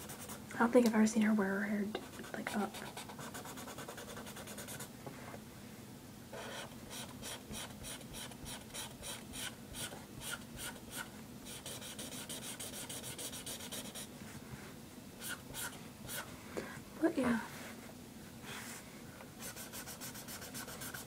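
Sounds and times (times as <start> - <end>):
marker scratching on paper: 0.0 - 0.4, 2.1 - 4.9, 6.4 - 14.1, 15.2 - 16.3, 19.4 - 21.0.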